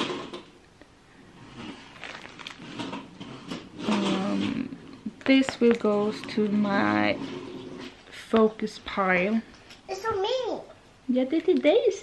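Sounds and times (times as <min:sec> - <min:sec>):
plastic wrapping rustling: 0:01.2 - 0:09.8.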